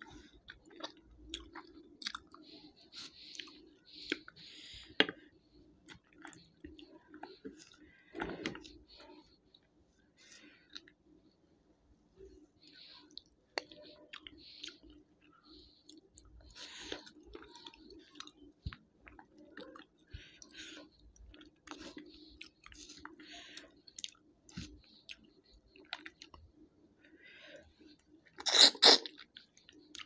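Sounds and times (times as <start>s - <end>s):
close chewing and wet mouth sounds: 0.0s - 30.0s.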